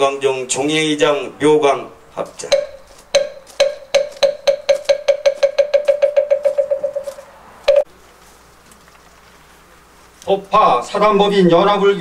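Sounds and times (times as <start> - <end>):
hollow wooden fish strokes: 2.4 - 10.2.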